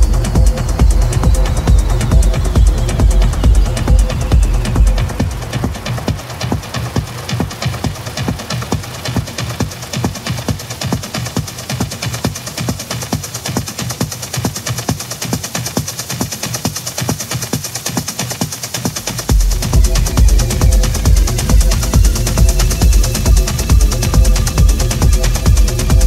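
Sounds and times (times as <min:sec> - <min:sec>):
kick drum and deep bass: 0:00.0 - 0:26.0
techno percussion and hi-hats: 0:00.0 - 0:26.0.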